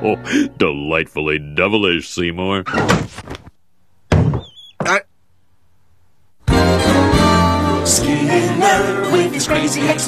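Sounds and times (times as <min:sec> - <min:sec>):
sudden thump: 0:04.1 - 0:04.9
high-pitched squeaks: 0:04.4 - 0:05.0.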